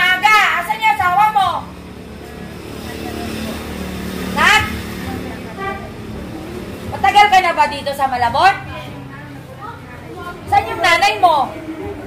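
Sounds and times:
vehicle passing on street: 0:00.0 - 0:12.0.

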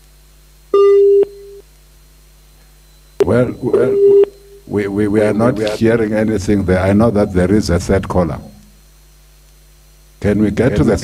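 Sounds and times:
faint line hum: 0:00.0 - 0:11.0
telephone busy tone beep: 0:00.7 - 0:01.6, 0:02.8 - 0:05.6.

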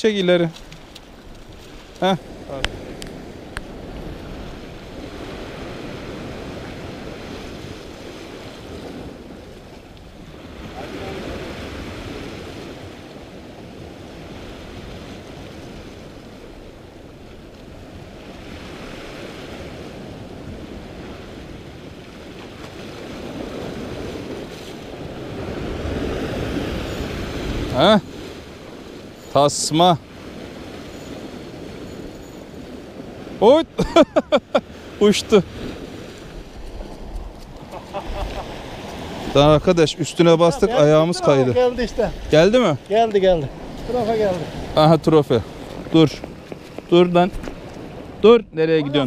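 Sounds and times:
waves breaking on rocky shore: 0:00.0 - 0:49.0.

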